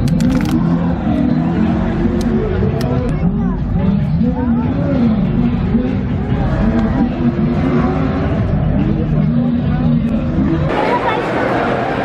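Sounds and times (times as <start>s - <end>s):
off-road vehicle engines revving: 0.0s - 10.8s
crowd chatter: 0.0s - 12.0s.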